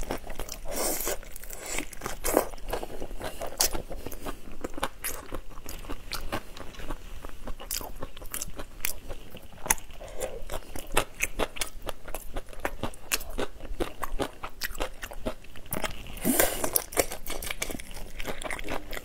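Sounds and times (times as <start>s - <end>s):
crunching shrimp shells: 7.7s - 19.0s.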